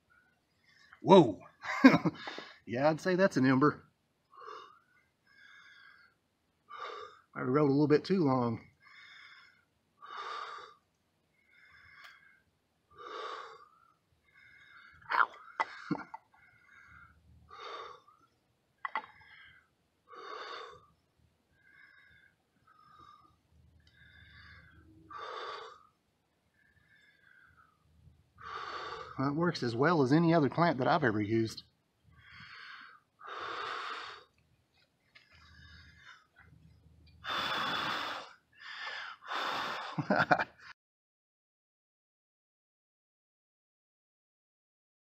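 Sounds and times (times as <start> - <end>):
man breathing heavily: 2.2 - 2.7, 4.3 - 7.3, 8.8 - 10.8, 11.4 - 18.3, 19.1 - 21.0, 21.6 - 29.2, 32.2 - 34.4, 35.1 - 36.4, 37.2 - 40.7
person blowing long breaths: 37.2 - 40.0.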